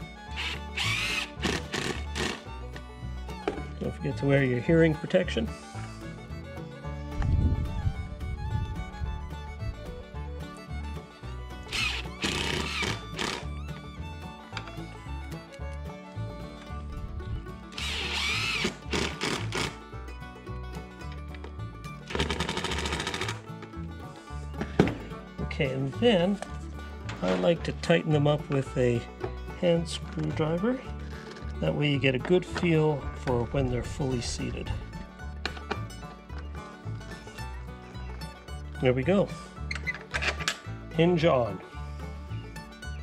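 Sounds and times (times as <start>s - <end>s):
background guitar music: 0.0s - 43.0s
cordless driver driving screws: 0.3s - 2.5s, 11.7s - 13.5s, 17.8s - 19.8s.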